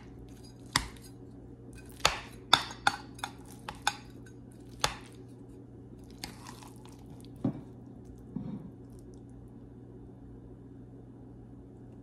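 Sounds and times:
soft squish of pasta: 4.6s - 9.6s.

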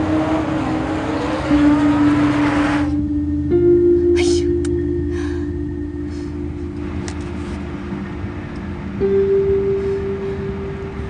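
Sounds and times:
road traffic rushing past: 0.0s - 3.8s, 4.8s - 11.0s
sustained music chord: 0.0s - 11.0s.

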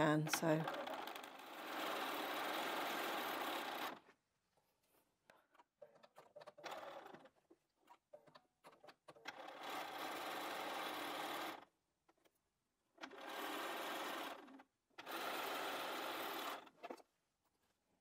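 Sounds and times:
sewing machine stitching: 0.0s - 4.2s, 4.9s - 17.1s.

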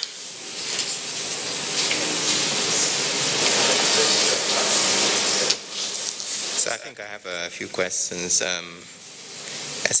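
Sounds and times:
loud rushing hiss: 0.0s - 7.2s, 8.0s - 10.0s.

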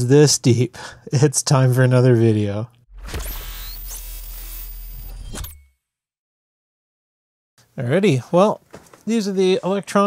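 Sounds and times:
fast electronic sweep: 2.9s - 5.5s.

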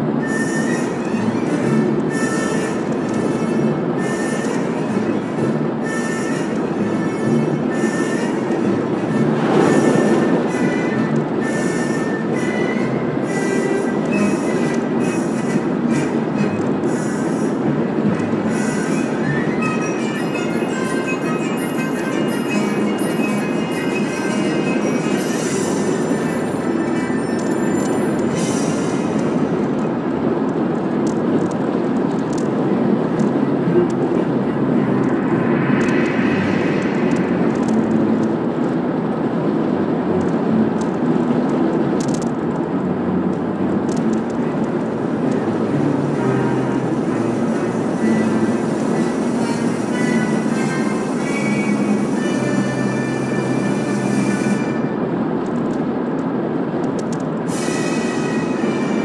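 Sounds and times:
music on car stereo: 0.0s - 54.9s
road and tyre rumble: 0.0s - 59.0s.

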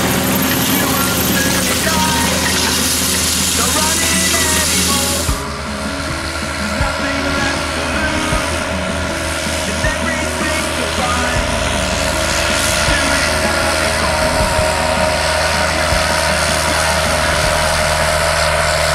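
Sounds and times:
tractor diesel engine droning: 0.0s - 18.9s.

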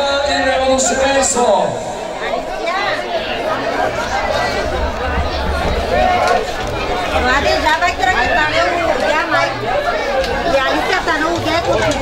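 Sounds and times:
people chatting: 0.0s - 12.0s.

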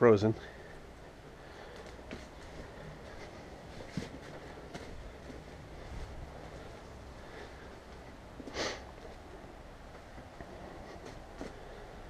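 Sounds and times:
low steady hum: 0.0s - 12.0s
hands rustling soil: 0.4s - 12.0s.

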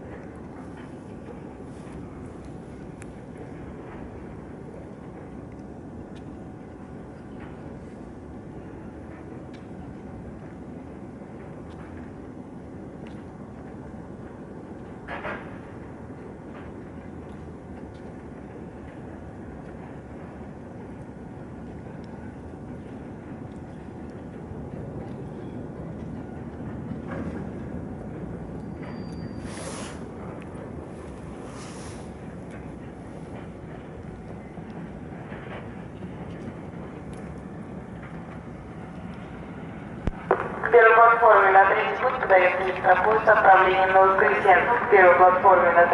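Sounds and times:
distant train rumble: 0.0s - 45.9s
brief hisses: 29.4s - 30.0s.

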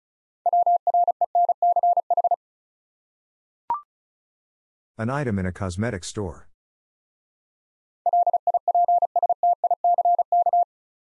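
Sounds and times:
morse code beeping: 0.5s - 2.4s, 8.1s - 10.7s.

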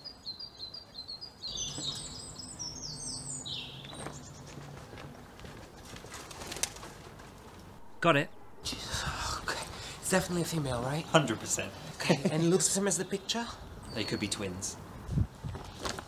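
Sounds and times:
birds chirping: 0.0s - 6.6s, 7.9s - 16.0s.

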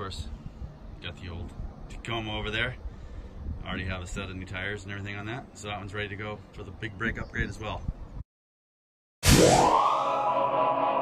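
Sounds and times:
rising electronic swoosh: 9.2s - 11.0s
steady electronic drone: 9.3s - 11.0s.

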